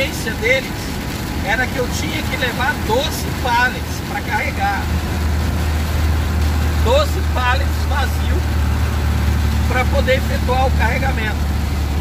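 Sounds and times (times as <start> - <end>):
heavy rain hiss: 0.0 - 12.0
truck engine droning: 0.0 - 12.0
wet tyre noise: 0.0 - 12.0.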